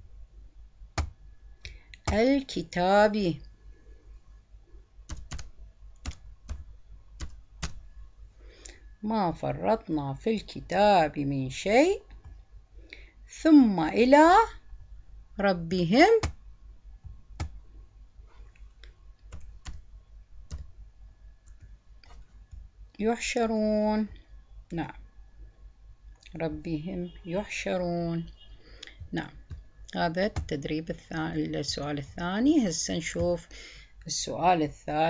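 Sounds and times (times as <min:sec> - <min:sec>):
computer keyboard typing: 0:05.1 - 0:07.8, 0:17.3 - 0:17.6, 0:19.3 - 0:19.8, 0:20.5 - 0:20.7, 0:29.4 - 0:30.6.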